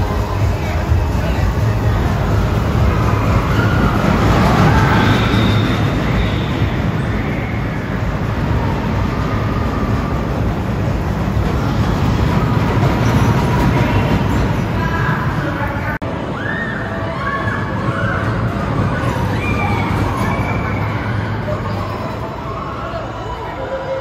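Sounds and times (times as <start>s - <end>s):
roller coaster rumbling on track: 0.0s - 24.0s.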